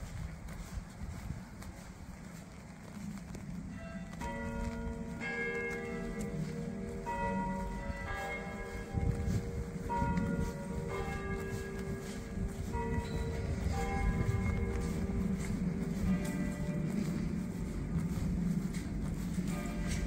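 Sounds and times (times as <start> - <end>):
bells ringing: 0.0 - 20.0
low background rumble: 12.2 - 20.0.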